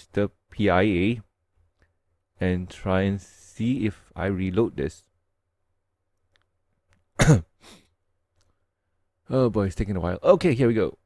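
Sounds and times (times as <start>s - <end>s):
man clearing his throat: 7.2s - 7.6s.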